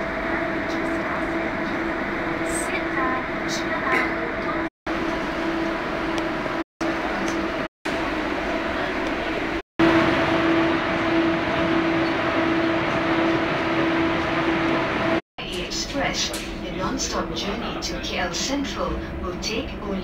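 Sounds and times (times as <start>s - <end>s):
train carriage rumble and hiss: 0.0s - 20.0s.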